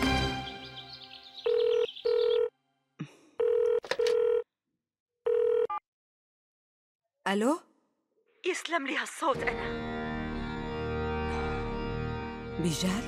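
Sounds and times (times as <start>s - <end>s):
background music: 0.0s - 1.6s, 9.2s - 13.0s
mobile phone ringing: 1.4s - 2.6s, 3.4s - 4.5s, 5.2s - 5.8s.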